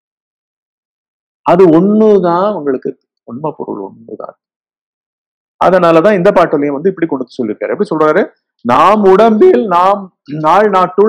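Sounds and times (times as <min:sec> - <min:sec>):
man speaking softly: 0:01.5 - 0:04.3, 0:05.7 - 0:11.0.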